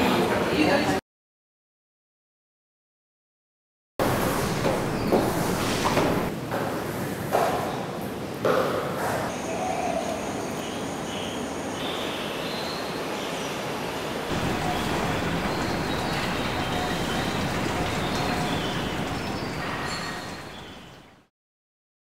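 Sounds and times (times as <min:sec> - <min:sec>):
steady rushing noise: 0:14.3 - 0:20.8.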